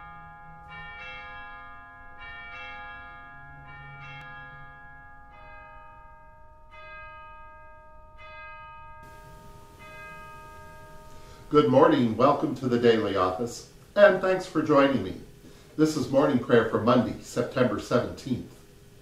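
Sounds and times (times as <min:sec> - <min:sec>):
bells ringing: 0:00.0 - 0:18.2.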